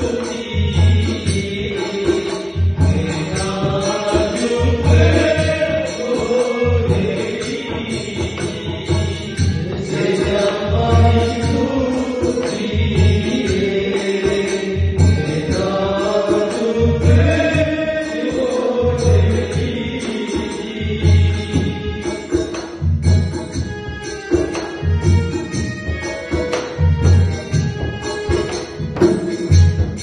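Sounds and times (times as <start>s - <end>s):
man singing into microphone: 0.0s - 22.5s
hand drum beating: 19.1s - 30.0s.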